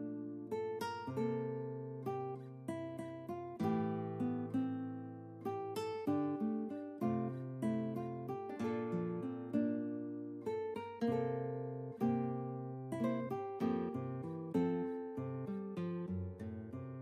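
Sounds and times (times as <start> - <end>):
acoustic guitar music: 0.0 - 17.0.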